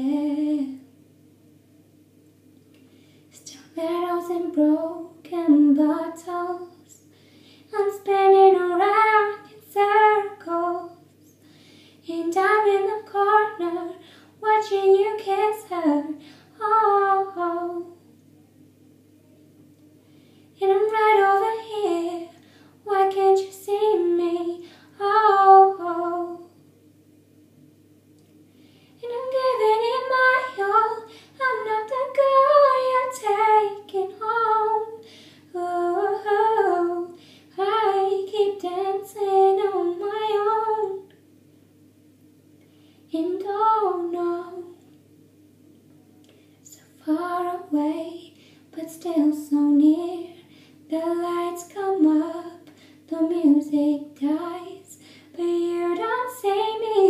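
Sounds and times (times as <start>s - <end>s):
breaths: 2.8s - 3.4s, 7.0s - 7.7s, 11.3s - 12.0s, 14.0s - 14.4s, 16.2s - 16.6s, 20.0s - 20.6s, 22.4s - 22.8s, 24.6s - 25.0s, 28.5s - 29.0s, 31.1s - 31.4s, 35.0s - 35.5s, 37.2s - 37.6s, 42.6s - 43.1s, 46.2s - 46.7s, 48.3s - 48.7s, 50.4s - 50.8s, 52.7s - 53.1s, 55.0s - 55.4s
woman singing pop ballad: 29.0s - 41.0s, 43.2s - 44.7s, 46.7s - 57.0s.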